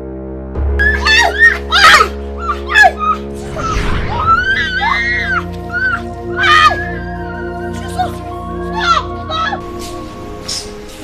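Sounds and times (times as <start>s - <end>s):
woman screaming and wailing: 0.8s - 9.6s.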